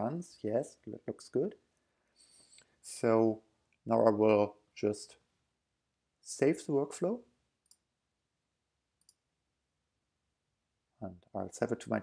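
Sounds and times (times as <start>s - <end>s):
person speaking: 0.0s - 1.6s, 2.3s - 5.2s, 6.3s - 7.2s, 11.0s - 12.0s.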